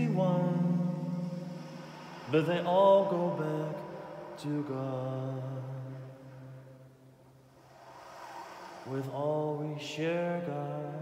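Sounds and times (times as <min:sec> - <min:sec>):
man's voice: 0:00.0 - 0:01.5, 0:02.3 - 0:06.3, 0:08.9 - 0:11.0.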